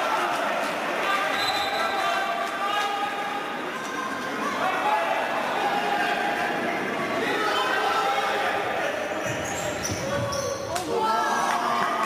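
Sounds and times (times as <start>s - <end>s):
players shouting in echoing hall: 0.0s - 12.0s.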